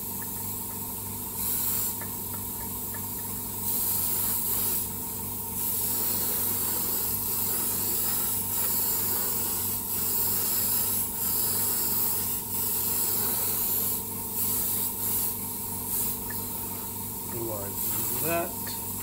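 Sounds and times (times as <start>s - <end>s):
airbrush spraying hiss: 1.3s - 2.1s, 3.6s - 5.0s, 5.6s - 19.0s.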